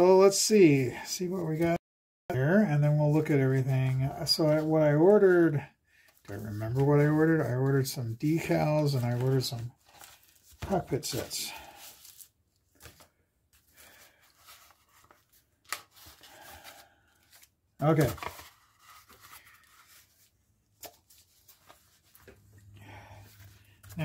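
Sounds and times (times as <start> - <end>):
paper envelope rustling and tearing: 8.4 - 22.6, 23.2 - 24.0.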